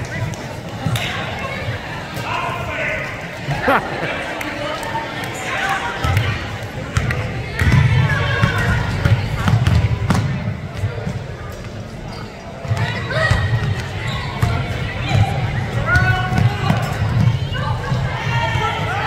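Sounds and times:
players calling out: 2.2 - 4.7.

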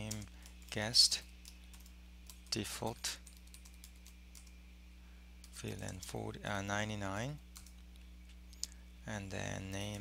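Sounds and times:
keyboard typing: 0.0 - 4.6, 7.5 - 7.8
low electrical hum: 0.0 - 10.0.

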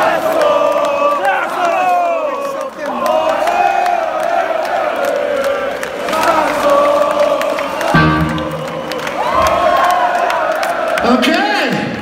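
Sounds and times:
crowd cheering and chanting: 0.0 - 12.0
amplified guitar chord: 8.0 - 9.0.

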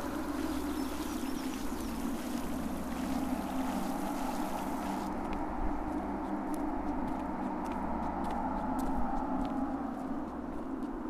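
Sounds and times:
outdoor background hiss: 0.0 - 6.1.

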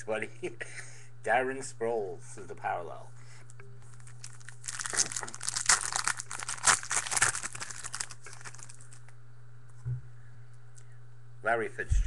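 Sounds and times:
wrapper crinkling and tearing: 3.9 - 9.1.

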